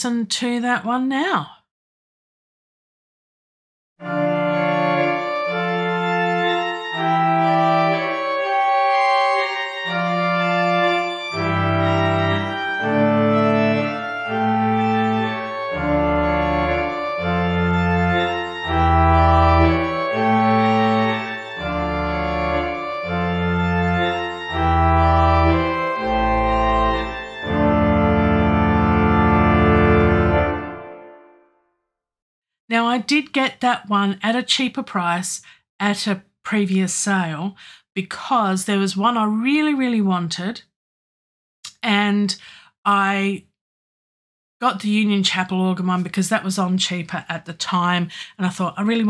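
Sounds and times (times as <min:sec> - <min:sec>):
pipe organ chords: 0:04.0 - 0:31.6.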